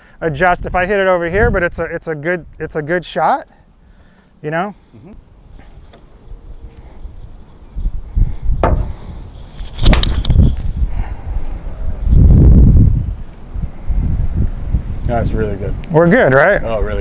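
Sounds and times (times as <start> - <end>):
low wind rumble: 0.0 - 3.0, 4.8 - 17.0
golf club striking ball: 8.6 - 9.0.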